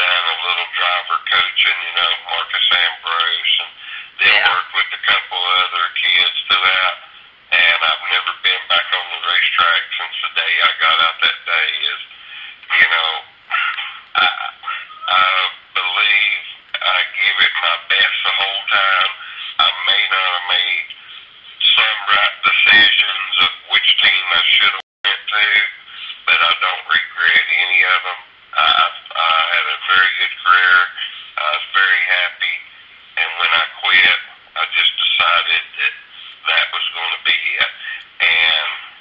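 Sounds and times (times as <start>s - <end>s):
person speaking over telephone: 0.0s - 39.0s.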